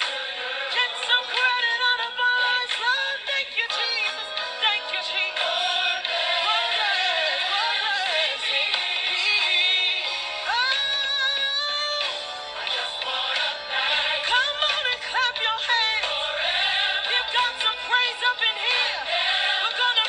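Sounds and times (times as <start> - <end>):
musical accompaniment: 0.0 - 20.0
person singing church song: 0.0 - 20.0.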